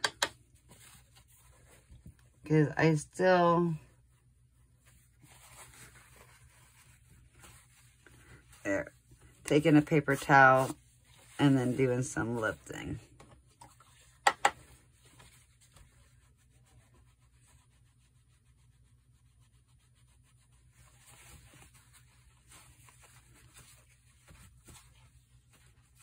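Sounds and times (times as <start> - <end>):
brush rubbing on paper: 3.9 - 26.0.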